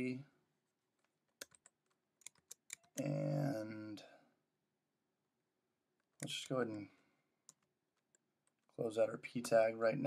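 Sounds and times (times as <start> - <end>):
computer keyboard keystrokes: 1.4 - 3.1.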